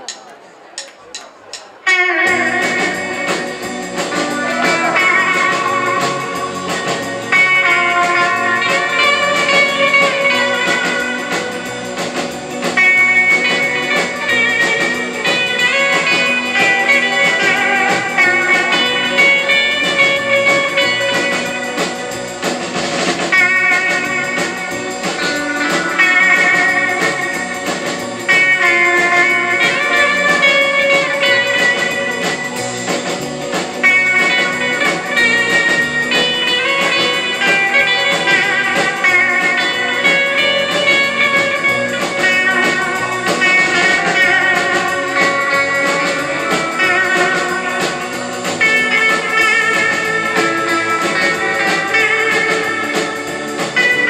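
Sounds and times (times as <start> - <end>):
drum kit beat: 0.0 - 54.0
electric guitar melody: 1.8 - 54.0.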